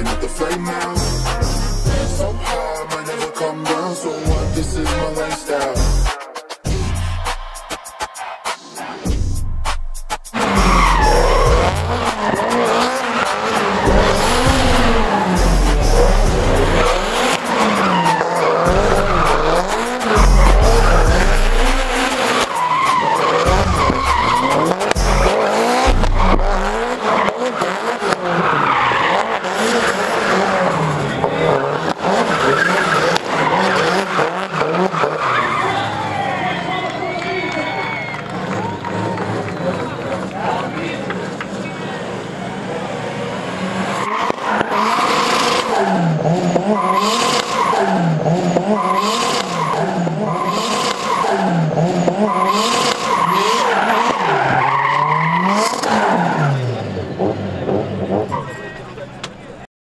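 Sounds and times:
car engine revving: 0.0 - 6.1, 6.7 - 37.0, 38.2 - 59.7
tyres squealing: 10.4 - 38.2, 43.7 - 59.5.

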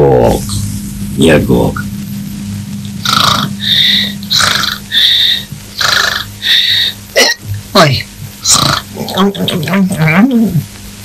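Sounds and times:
cartoon snoring: 3.0 - 7.0, 8.4 - 9.0.

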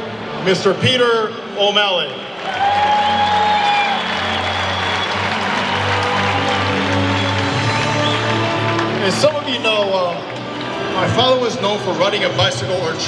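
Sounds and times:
stadium crowd applauding: 2.0 - 12.2
music with sustained notes: 2.6 - 13.0.

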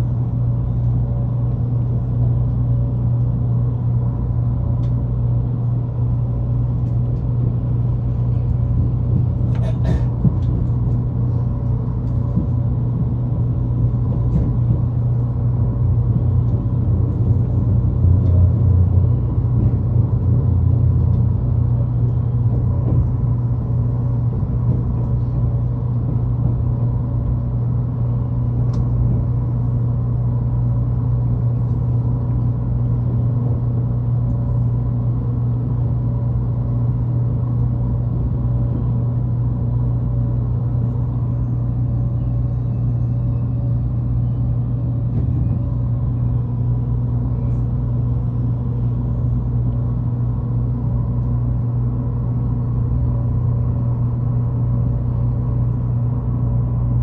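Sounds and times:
train low mechanical hum: 0.0 - 57.0.

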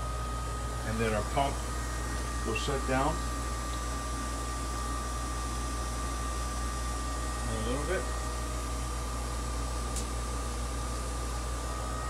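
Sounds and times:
constant high whine: 0.0 - 12.0
pool pump humming: 0.0 - 12.0.

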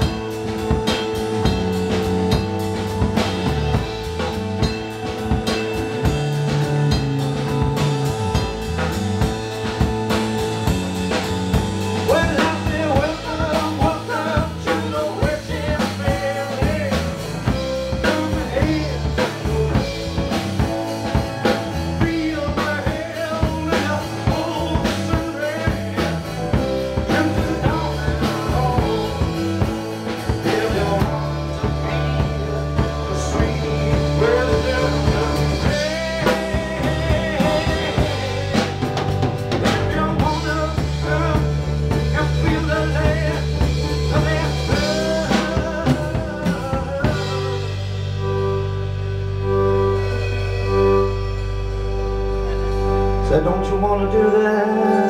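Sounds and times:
drum kit hits: 0.0 - 53.8
live rock band playing: 0.0 - 55.0.

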